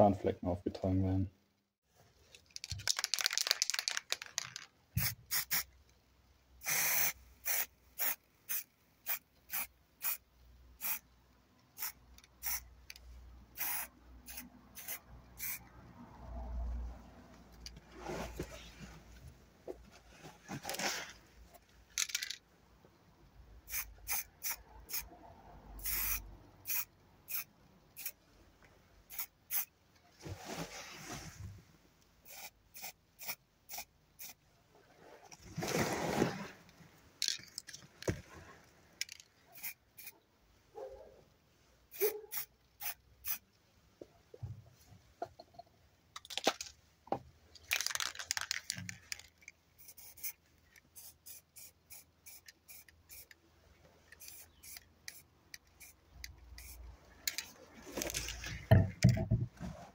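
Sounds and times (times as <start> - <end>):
spray-paint can hissing: 5.0 - 5.7, 6.6 - 10.2, 10.8 - 11.0, 11.8 - 12.6, 13.6 - 15.6, 23.7 - 25.0, 25.8 - 28.2, 29.1 - 29.7, 32.3 - 34.4, 39.6 - 40.1, 41.9 - 43.4, 49.8 - 50.3, 50.9 - 53.3, 54.2 - 56.8.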